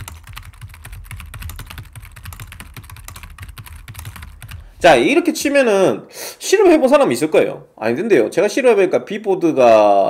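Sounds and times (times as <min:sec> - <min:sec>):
fast typing on keyboard: 0:00.0 - 0:04.8.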